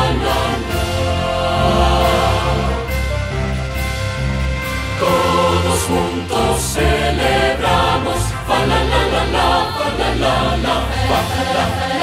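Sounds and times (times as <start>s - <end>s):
choir singing festive song: 0.0s - 12.0s
instrumental accompaniment: 0.0s - 12.0s.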